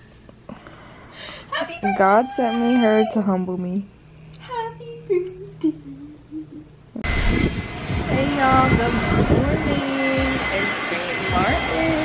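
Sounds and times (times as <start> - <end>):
aircraft engines running: 7.0 - 12.0.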